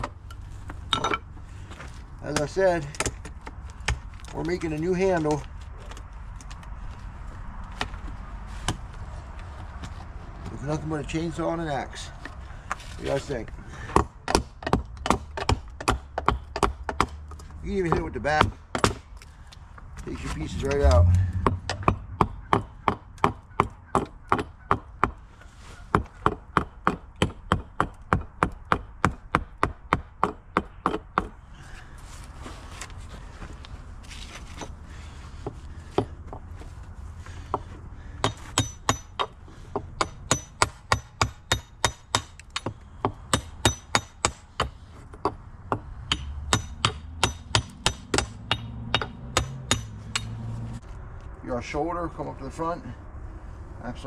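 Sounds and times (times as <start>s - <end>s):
hatchet chopping wood: 13.9s - 19.2s, 21.4s - 25.2s, 25.9s - 31.4s, 37.5s - 50.5s.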